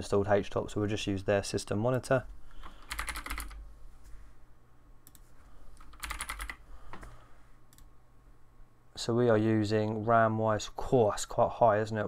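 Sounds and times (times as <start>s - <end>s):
computer keyboard typing: 2.7s - 3.6s, 5.1s - 6.6s.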